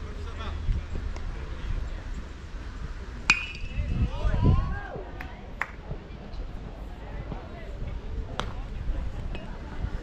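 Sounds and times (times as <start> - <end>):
baseball crack: 3.2 - 4.0, 8.3 - 9.6.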